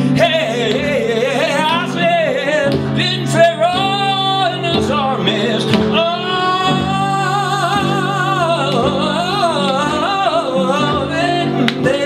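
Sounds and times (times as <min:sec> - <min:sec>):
low accompaniment: 0:00.0 - 0:12.0
person singing with vibrato: 0:00.0 - 0:12.0.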